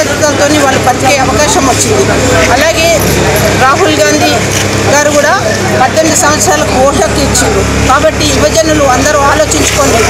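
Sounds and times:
woman speaking: 0:00.0 - 0:03.0.

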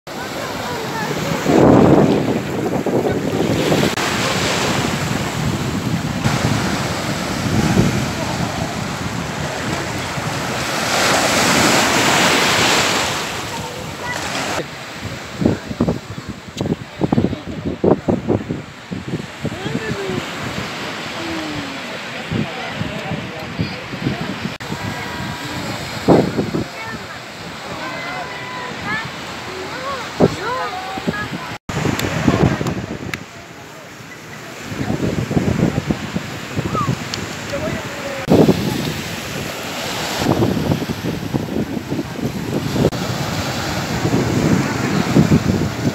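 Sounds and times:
people chatting: 0:00.1 - 0:04.9, 0:12.0 - 0:14.8, 0:15.4 - 0:18.2, 0:19.4 - 0:20.4, 0:21.0 - 0:35.9, 0:36.6 - 0:39.0
small waves breaking on beach: 0:00.1 - 0:45.9
surf hissing: 0:00.1 - 0:45.9
wind on microphone: 0:00.1 - 0:45.9.

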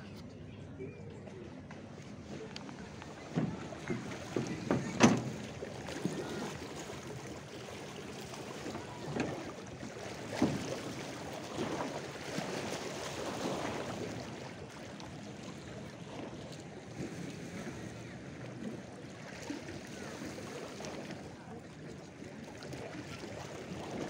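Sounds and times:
lake waves lapping on shore: 0:02.0 - 0:24.0.

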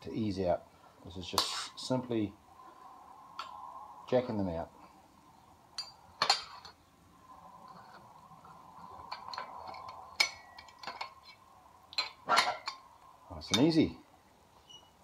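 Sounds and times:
faint steady hum: 0:00.0 - 0:15.0
metal clinks and knocks: 0:05.7 - 0:06.8, 0:07.6 - 0:12.9.

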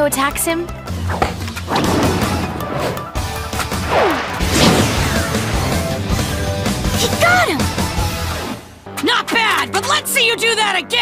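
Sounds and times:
action background music: 0:00.0 - 0:11.0
falling whooshes: 0:03.7 - 0:06.5
impact hits: 0:03.8 - 0:06.7.

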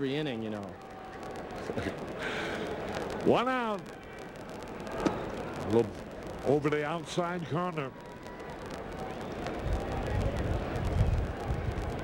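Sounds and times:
crowd murmur: 0:00.6 - 0:06.5, 0:07.4 - 0:12.0.

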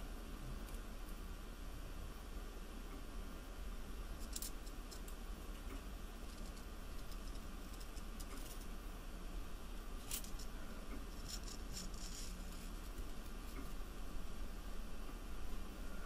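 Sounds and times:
faint hum and hiss: 0:00.0 - 0:16.0.

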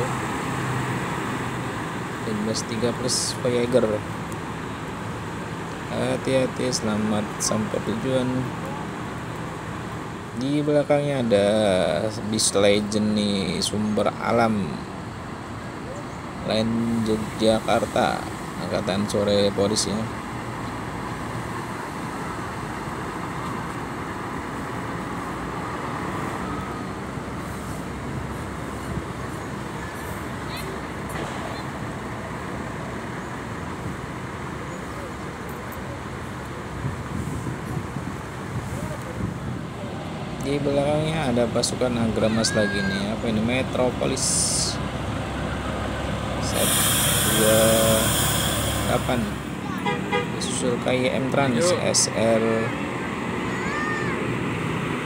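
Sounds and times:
bus diesel engine running: 0:00.0 - 0:55.0
road and traffic noise: 0:00.0 - 0:55.0
loud hiss: 0:46.4 - 0:49.6
short pitched sound: 0:46.4 - 0:50.0.

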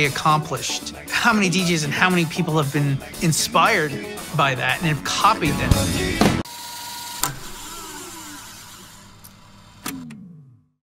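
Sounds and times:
tape machine whirring down: 0:05.4 - 0:10.8.

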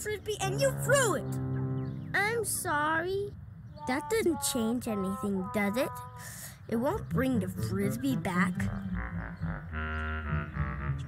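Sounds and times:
held chords over low bass: 0:07.1 - 0:11.0.

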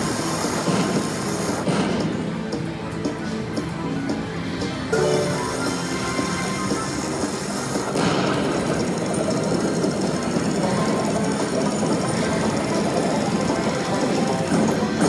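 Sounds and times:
slot machine game music: 0:00.0 - 0:15.0
rattling blast sound: 0:07.4 - 0:10.6.

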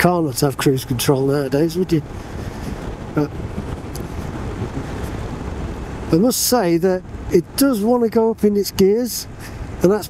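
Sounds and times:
low motorcycle rumble: 0:00.0 - 0:10.0
wind buffeting microphone: 0:00.0 - 0:10.0.

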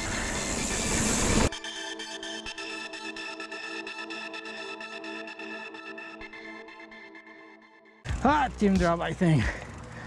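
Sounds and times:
background music: 0:01.5 - 0:10.0.

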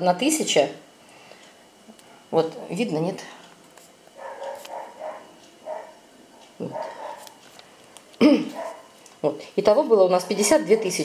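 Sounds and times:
dog barking: 0:04.2 - 0:06.0, 0:06.6 - 0:07.3, 0:08.5 - 0:09.0.

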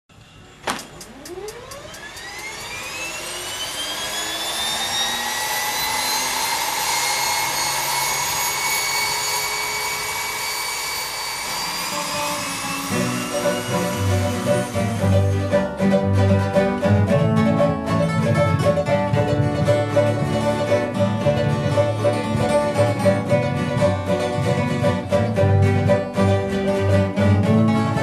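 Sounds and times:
propeller engine starting: 0:00.1 - 0:28.0
loud click: 0:00.6 - 0:02.3
banjo music: 0:12.6 - 0:28.0.

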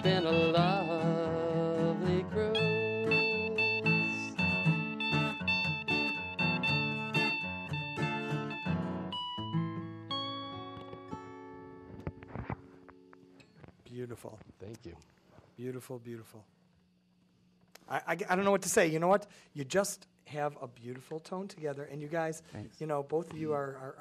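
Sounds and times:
person singing: 0:00.0 - 0:04.8
acoustic guitars playing: 0:00.0 - 0:13.8.

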